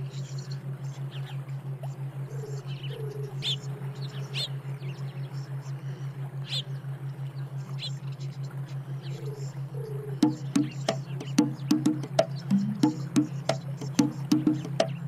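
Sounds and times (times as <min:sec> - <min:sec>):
low pulsing hum: 0:00.0 - 0:15.0
bird chirps: 0:10.2 - 0:15.0.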